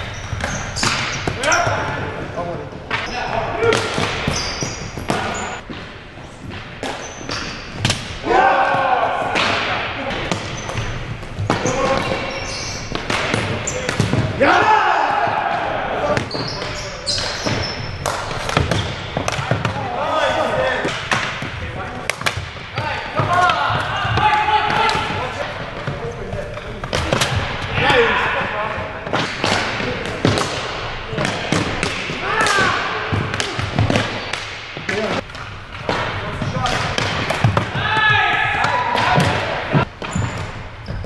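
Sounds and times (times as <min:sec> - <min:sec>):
hockey sticks clacking: 0:00.0 - 0:41.0
players calling out: 0:00.1 - 0:05.6, 0:08.2 - 0:30.4.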